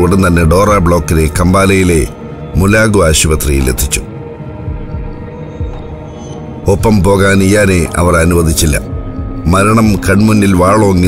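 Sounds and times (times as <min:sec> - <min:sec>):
soft low pulses: 0:00.7 - 0:10.8.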